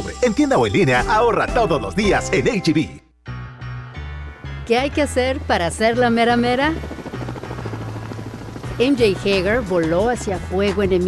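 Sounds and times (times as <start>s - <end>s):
person speaking: 0.0s - 3.0s
helicopter rotor chopping: 4.9s - 11.0s.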